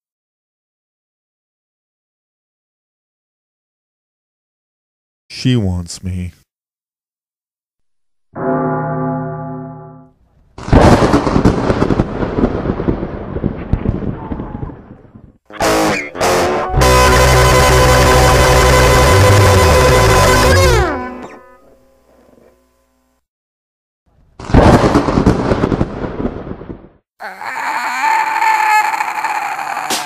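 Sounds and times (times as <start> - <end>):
thunderclap rumble: 10.5 - 15.4, 24.6 - 27.0.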